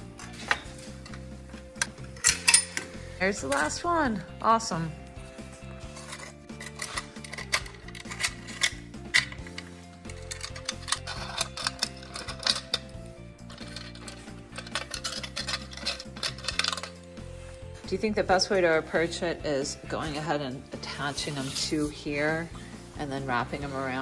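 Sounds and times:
background music: 0.0s - 24.0s
metal parts clinking and rattling: 0.2s - 3.8s, 5.8s - 17.0s.

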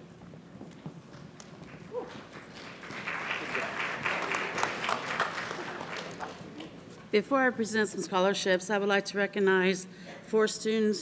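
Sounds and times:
audience applauding: 1.6s - 6.8s.

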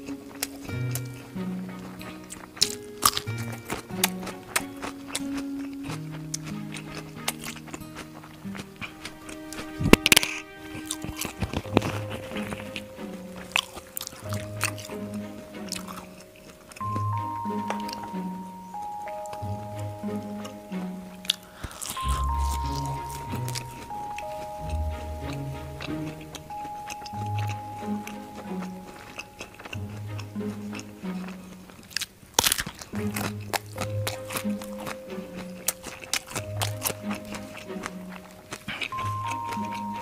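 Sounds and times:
close chewing mouth sounds: 0.0s - 40.0s
soft background music: 0.0s - 40.0s.

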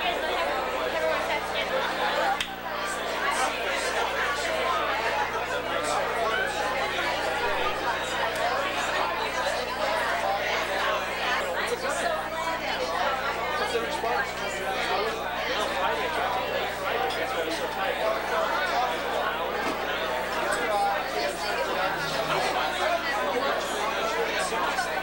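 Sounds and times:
chatter of many people: 0.0s - 25.0s.

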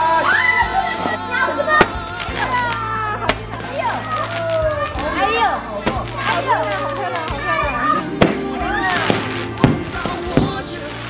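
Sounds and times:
children shouting and squealing: 0.0s - 10.1s.

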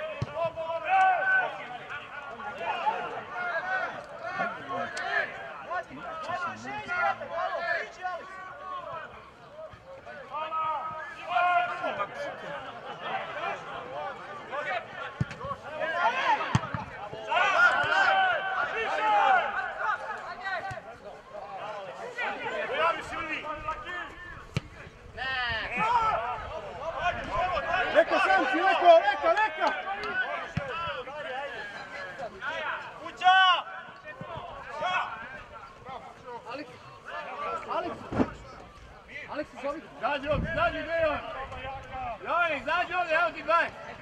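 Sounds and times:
players and spectators shouting: 0.0s - 44.0s.

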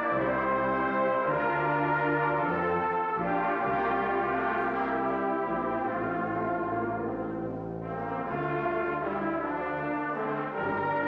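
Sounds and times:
brass choir playing sustained chords: 0.0s - 11.0s.

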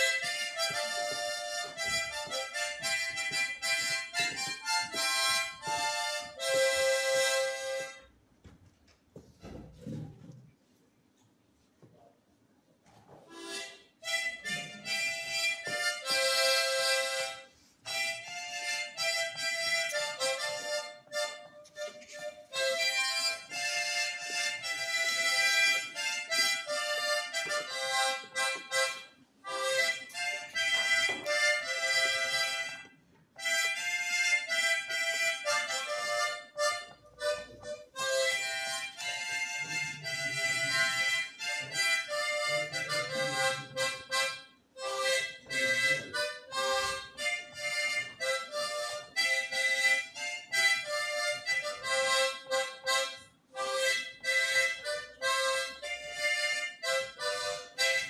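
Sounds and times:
harmonica melody with chords: 0.0s - 8.1s, 13.3s - 58.0s.

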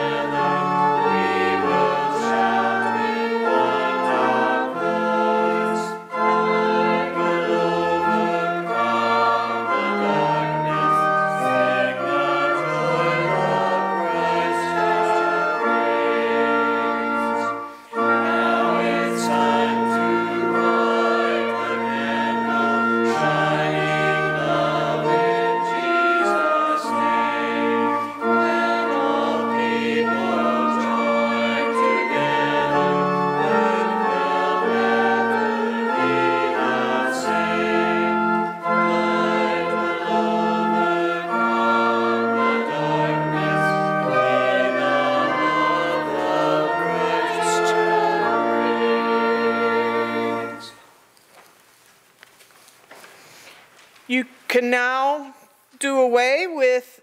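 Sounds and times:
small group singing a hymn: 0.0s - 50.9s
organ accompaniment: 0.0s - 51.5s.

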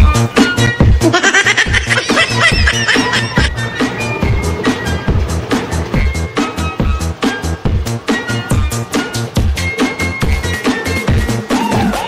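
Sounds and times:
child laughing: 1.0s - 3.5s
electronic dance music: 1.2s - 3.5s.

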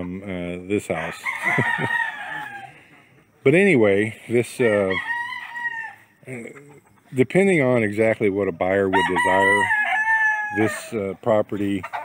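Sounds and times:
rooster crowing: 1.1s - 2.9s, 4.8s - 6.2s, 8.9s - 10.9s.

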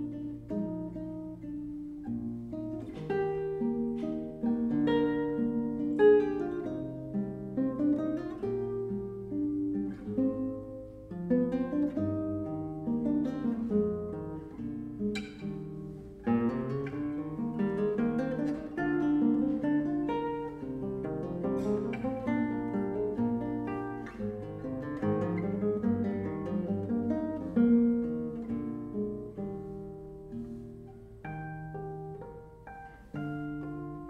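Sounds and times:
classical guitar fingerpicking: 0.0s - 34.0s.

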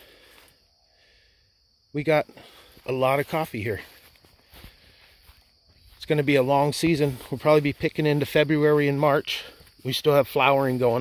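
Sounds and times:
soft footsteps on ground: 2.1s - 11.0s.

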